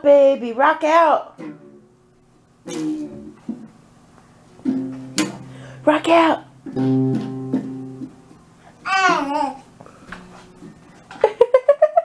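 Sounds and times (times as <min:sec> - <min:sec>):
toy guitar strum: 0:01.4 - 0:01.9, 0:04.6 - 0:05.7, 0:06.7 - 0:08.2.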